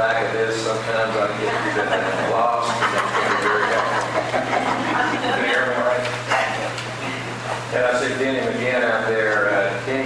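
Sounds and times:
muffled man's voice: 0:00.0 - 0:04.0, 0:07.7 - 0:10.0
low electrical hum: 0:00.0 - 0:10.0.

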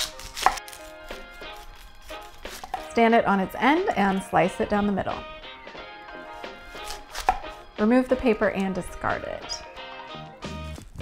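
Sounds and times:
knife chopping on wooden board: 0:00.0 - 0:00.8, 0:06.7 - 0:07.6.

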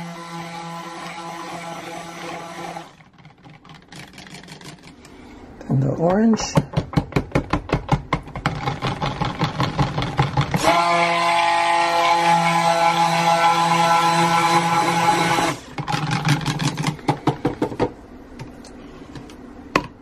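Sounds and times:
stick blender humming: 0:00.0 - 0:05.4, 0:06.1 - 0:19.9.

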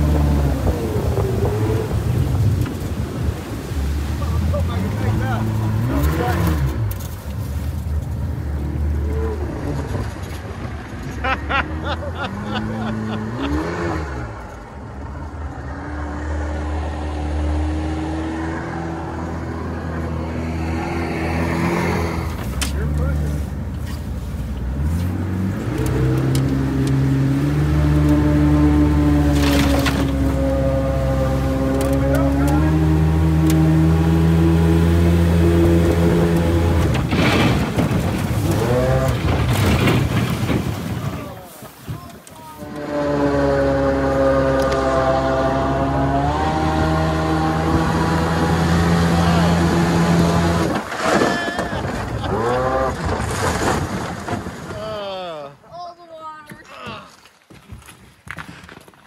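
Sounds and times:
outboard jet boat engine: 0:00.0 - 0:55.4.

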